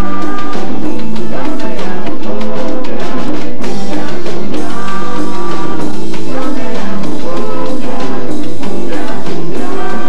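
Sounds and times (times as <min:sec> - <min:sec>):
congas and hand percussion: 0:00.0 - 0:10.0
live salsa band playing: 0:00.0 - 0:10.0.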